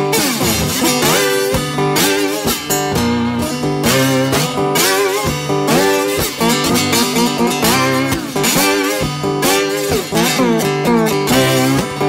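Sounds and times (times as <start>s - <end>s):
slide guitar playing blues: 0.0s - 12.0s.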